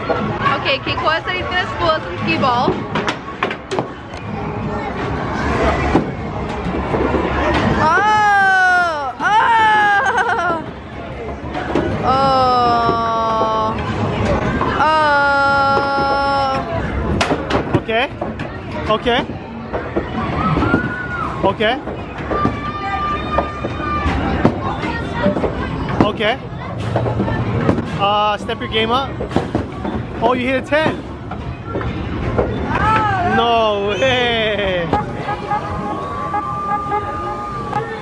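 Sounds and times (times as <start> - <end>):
voices chattering: 0.0 - 38.0
balls rolling up lanes: 1.4 - 8.4, 15.5 - 33.4
arcade din rumble: 23.4 - 38.0
steady pitched tone: 33.9 - 38.0
arcade din: 34.2 - 38.0.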